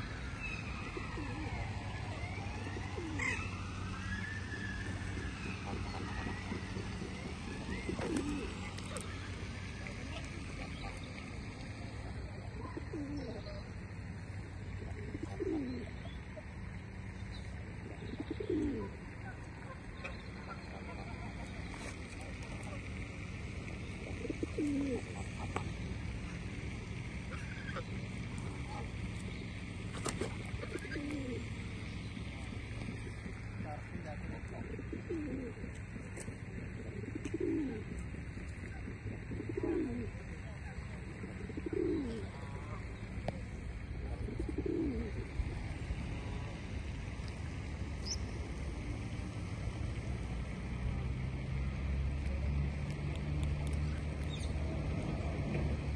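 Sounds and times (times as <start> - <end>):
pigeon cooing: 0.0 - 17.0, 17.7 - 22.8, 23.8 - 46.5
low outdoor rumble: 0.0 - 55.9.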